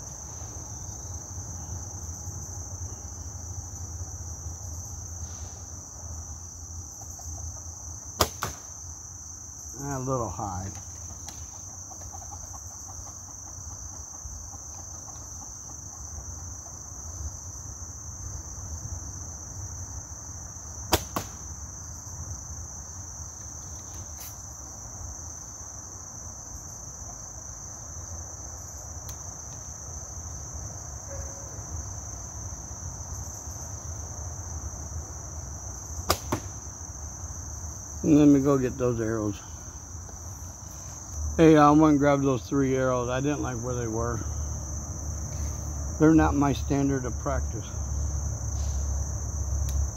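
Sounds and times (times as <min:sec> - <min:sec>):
insects buzzing: 0:00.0 - 0:49.9
arrow striking target: 0:08.2 - 0:08.7, 0:20.9 - 0:21.5, 0:36.1 - 0:36.6
bow string snap: 0:36.1 - 0:36.6.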